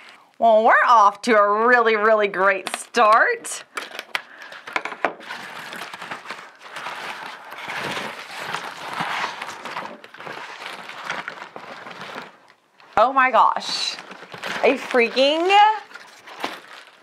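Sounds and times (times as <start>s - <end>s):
bubble wrap crinkling: 2.8s - 17.0s.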